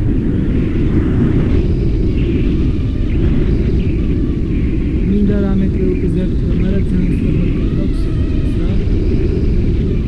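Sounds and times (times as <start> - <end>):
wind rushing over microphone: 0.0 - 10.0
faint voices: 5.1 - 9.1.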